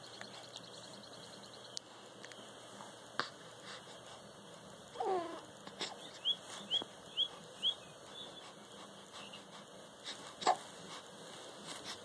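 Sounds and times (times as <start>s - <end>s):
baby cooing: 5.0s - 6.2s, 10.1s - 10.7s
high rising bird chirps: 6.0s - 8.4s.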